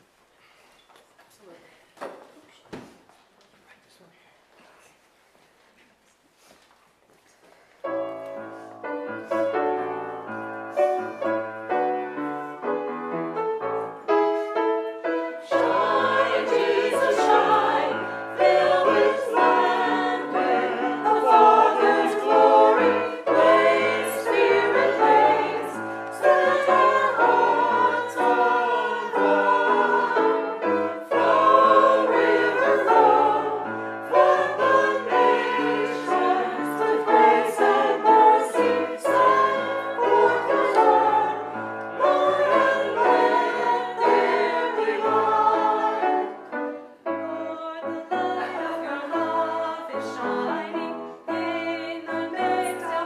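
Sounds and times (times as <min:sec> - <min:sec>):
choir singing: 0:08.0 - 0:53.0.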